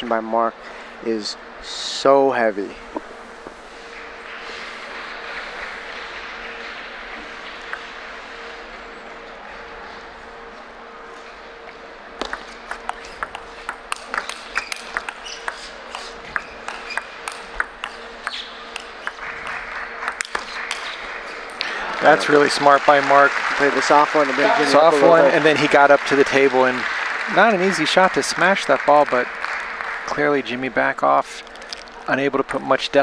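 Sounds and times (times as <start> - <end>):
faint steady hum: 0.0 - 33.0
murmur of large hall: 0.0 - 33.0
table tennis ball clicking: 12.2 - 21.6.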